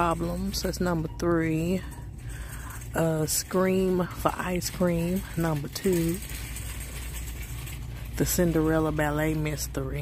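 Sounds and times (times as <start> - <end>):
shop background hum: 0.0 - 10.0.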